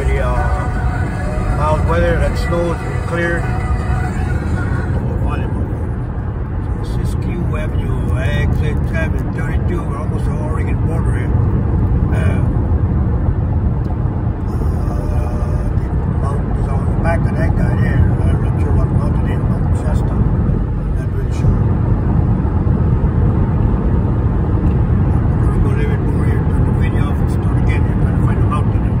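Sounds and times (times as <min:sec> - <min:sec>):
road and engine rumble in car: 0:00.0 - 0:29.0.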